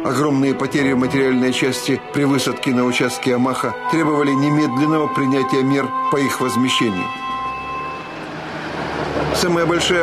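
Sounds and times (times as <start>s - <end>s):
background music: 0.0s - 10.0s
tank engine rumbling: 7.3s - 10.0s.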